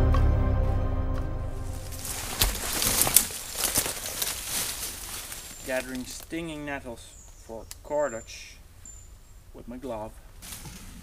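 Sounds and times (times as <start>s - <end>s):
leaves and stems crackling: 1.6s - 8.6s.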